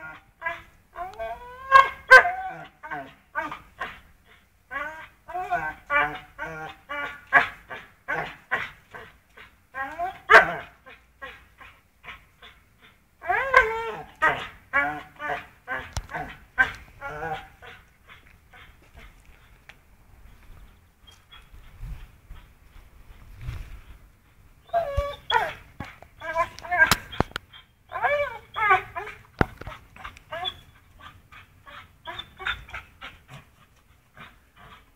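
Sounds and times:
dog whining yelps: 0:00.0 - 0:04.0, 0:04.7 - 0:08.3, 0:09.8 - 0:11.4, 0:13.2 - 0:18.7, 0:24.6 - 0:31.1, 0:31.7 - 0:33.2.

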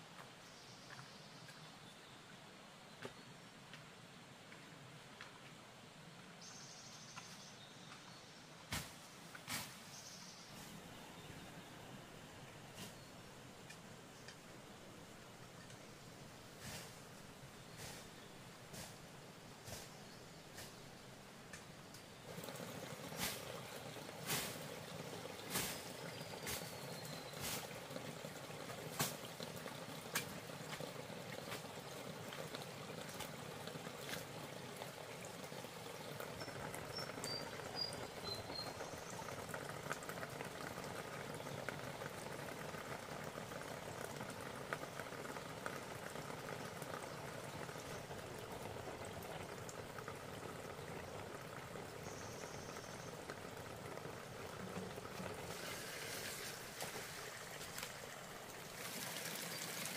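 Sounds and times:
water trickling and splashing: 0:10.5 - 0:59.9.

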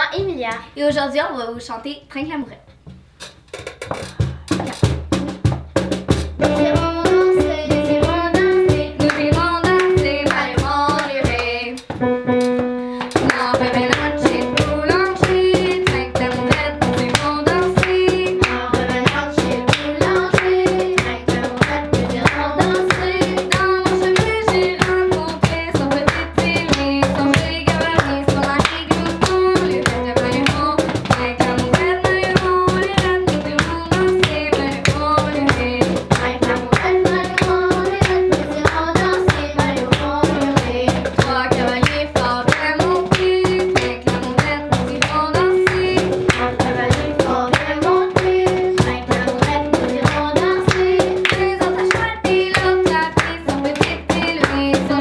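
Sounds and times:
box drum beat: 0:02.8 - 0:55.0
piano: 0:06.2 - 0:55.0
children singing in unison: 0:13.3 - 0:55.0.

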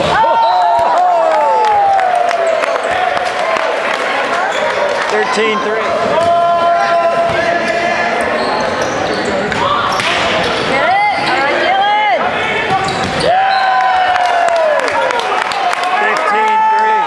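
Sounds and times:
people shouting: 0:05.2 - 0:08.2
sneaker squeaks on hardwood floor: 0:08.2 - 0:11.4, 0:12.8 - 0:13.3.

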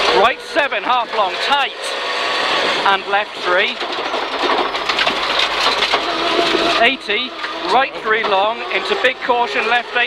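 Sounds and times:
gravel and tyre noise: 0:00.0 - 0:10.0
rally car engine running hard: 0:00.0 - 0:10.0.

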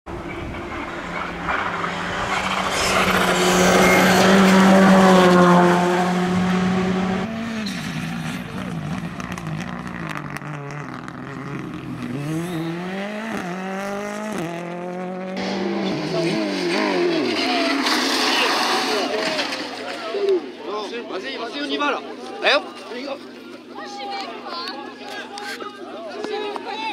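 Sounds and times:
rally car engines high-revving: 0:00.1 - 0:20.2.

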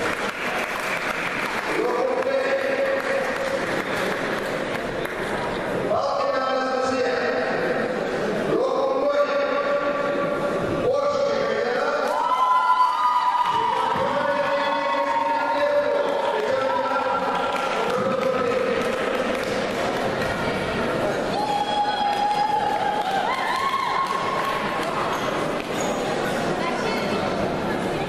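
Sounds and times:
crowd noise in echoing hall: 0:00.0 - 0:28.0.

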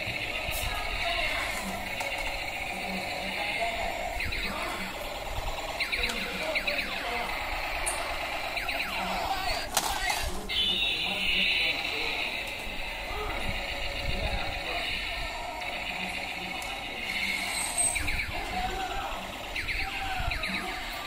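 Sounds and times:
laser-like sweeping tones: 0:00.0 - 0:09.7, 0:10.3 - 0:21.0
steady buzzy toy tone: 0:00.0 - 0:21.0.

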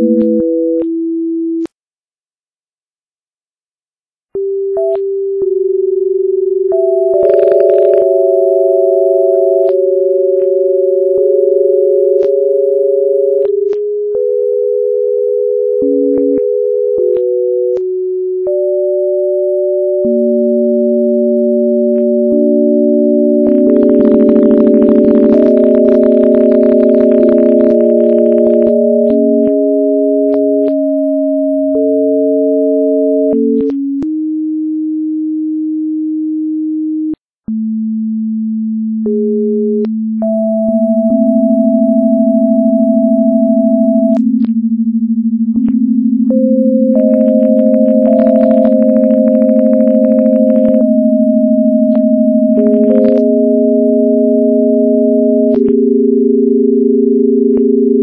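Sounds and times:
electronic sine-wave tones: 0:00.0 - 0:01.7, 0:04.4 - 0:58.0
click at pitch change: 0:51.9 - 0:53.3.

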